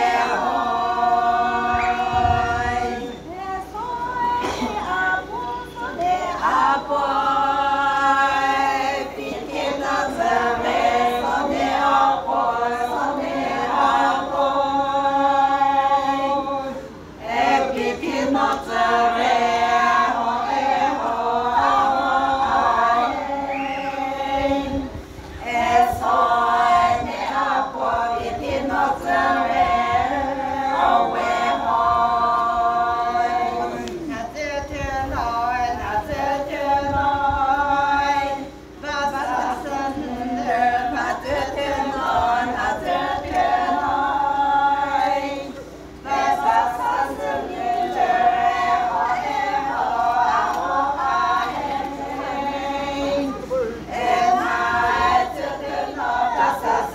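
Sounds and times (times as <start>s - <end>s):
women singing unaccompanied: 0.0s - 56.9s.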